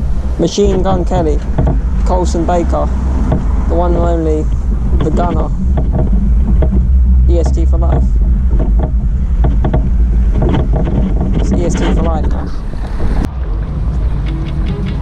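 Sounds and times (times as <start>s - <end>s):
wind buffeting microphone: 0.0s - 15.0s
indistinct talking voices: 0.4s - 9.8s, 11.3s - 12.7s.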